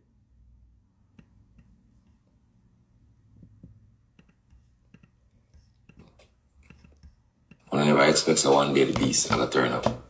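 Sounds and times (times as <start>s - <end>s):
man speaking: 7.6s - 10.0s.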